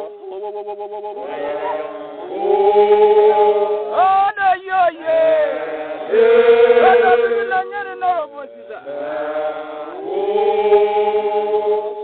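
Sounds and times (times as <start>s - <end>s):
group singing unaccompanied: 1.2s - 12.0s.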